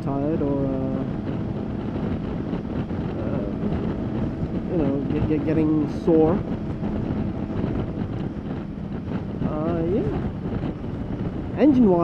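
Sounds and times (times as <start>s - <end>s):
motorcycle engine drone: 0.0s - 12.0s
road noise: 0.0s - 12.0s
wind rushing over microphone: 0.0s - 12.0s.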